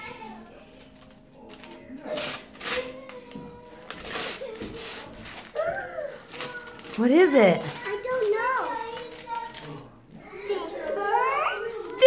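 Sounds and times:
wrapping paper ripping: 0.6 - 10.3
child's voice: 2.7 - 7.0, 7.6 - 12.0.

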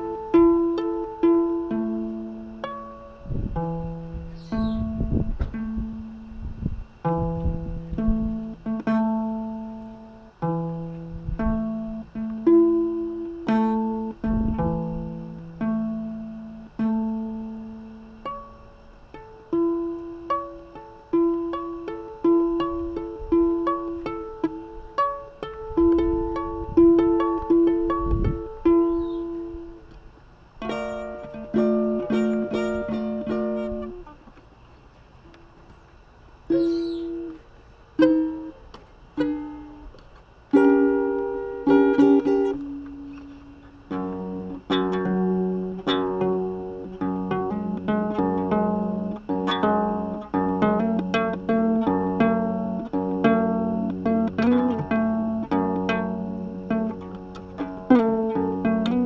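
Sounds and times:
fingerstyle guitar: 0.0 - 35.9, 36.5 - 59.0.

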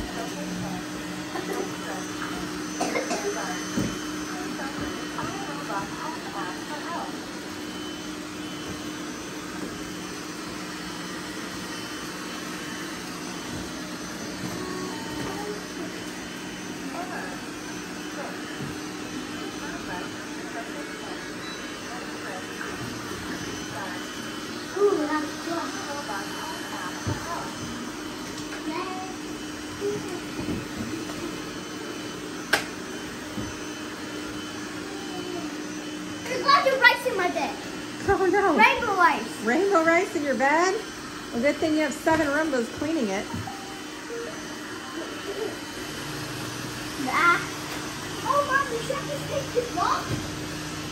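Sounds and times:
robot vacuums whirring: 0.0 - 50.9.

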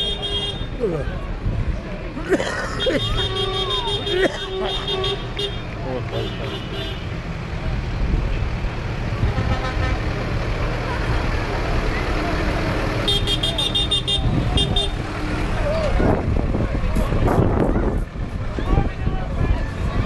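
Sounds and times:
tractor engines running: 0.0 - 20.0.

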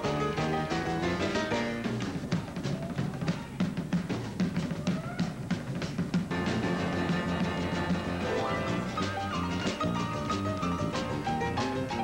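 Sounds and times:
ragtime upright piano: 0.0 - 3.2, 5.6 - 12.0
sustained band notes: 0.0 - 3.9, 6.3 - 12.0
drum kit hits: 0.0 - 12.0.

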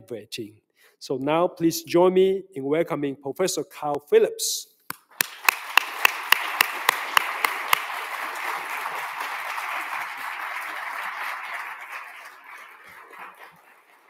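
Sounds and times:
close sharp hand claps: 4.9 - 14.0
audience applause: 5.2 - 14.0.

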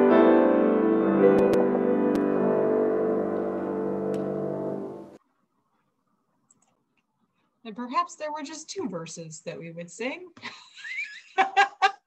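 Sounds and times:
piano slow sustained chords: 0.0 - 5.2.

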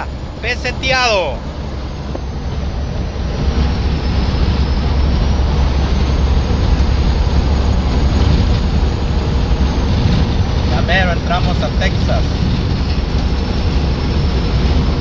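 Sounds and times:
road and wind noise in vehicle: 0.0 - 15.0.

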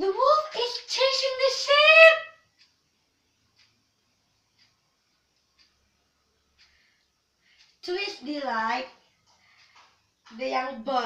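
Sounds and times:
faint clicks: 2.5 - 7.9, 8.8 - 10.4.

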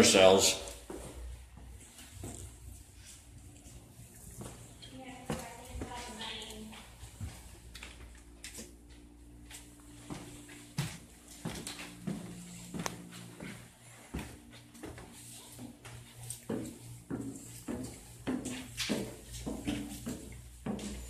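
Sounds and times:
footsteps on wooden stairs: 0.6 - 3.3, 4.3 - 21.0
low hum: 0.6 - 17.2.

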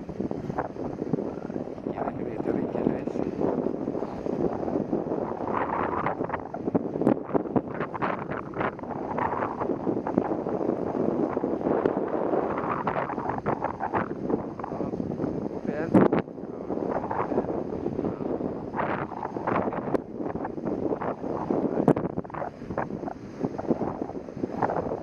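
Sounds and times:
wind rushing over microphone: 0.0 - 25.0.

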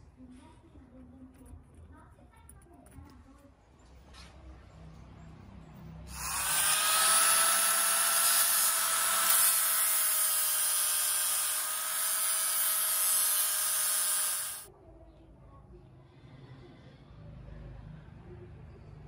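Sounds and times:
angle grinder grinding steel: 6.1 - 14.7.

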